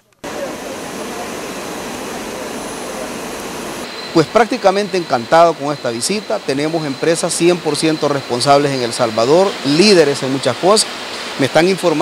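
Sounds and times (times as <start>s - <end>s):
factory machinery hiss and hum: 0.2s - 12.0s.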